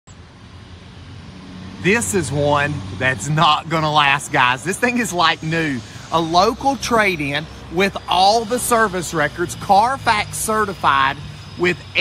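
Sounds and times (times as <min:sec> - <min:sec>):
man speaking: 0:01.8 - 0:12.0.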